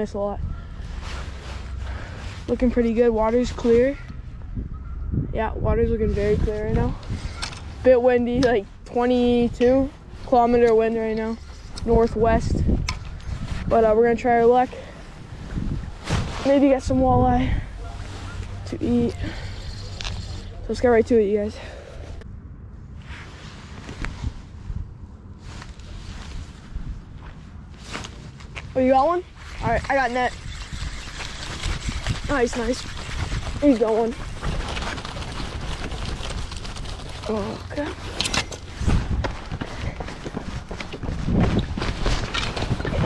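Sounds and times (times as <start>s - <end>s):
wind buffeting microphone: 0.0s - 43.0s
footsteps on concrete: 38.6s - 41.8s.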